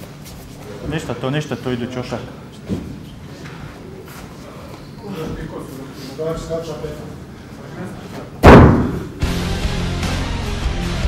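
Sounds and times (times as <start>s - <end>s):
loud reverberant impact hit: 8.4s - 9.4s.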